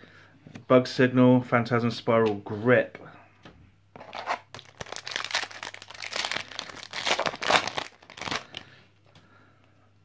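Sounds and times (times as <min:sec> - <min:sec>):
wrapper tearing open: 0:04.0 - 0:08.6
foil wrapper crinkling: 0:04.0 - 0:08.7.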